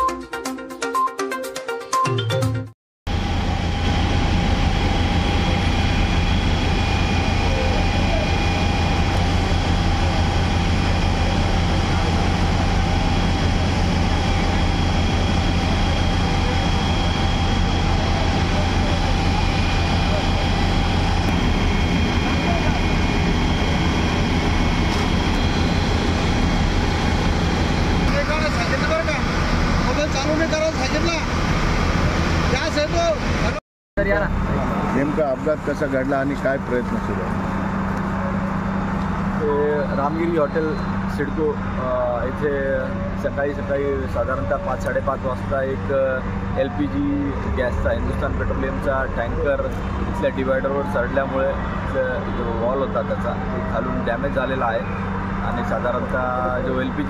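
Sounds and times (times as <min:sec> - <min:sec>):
low even drone: 0:03.1 - 0:57.0
water spraying from fire hoses: 0:03.4 - 0:31.3.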